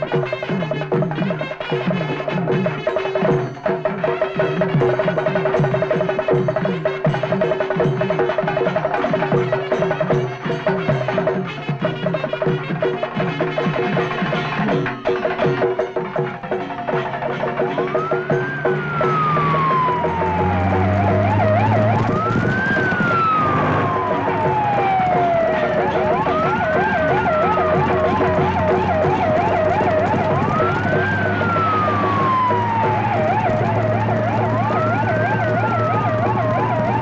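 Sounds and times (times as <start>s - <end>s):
wailing siren: 0.0s - 11.9s, 13.1s - 37.0s
percussive music: 0.0s - 37.0s.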